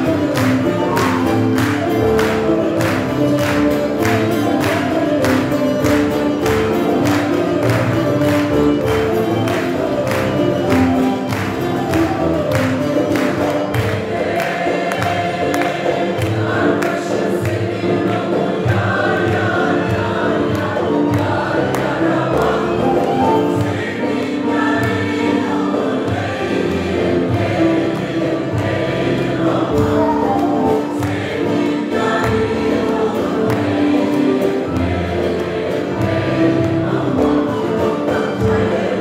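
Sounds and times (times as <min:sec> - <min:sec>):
folk string instruments: 0:00.0 - 0:39.0
mixed choir singing folk song: 0:00.0 - 0:39.0.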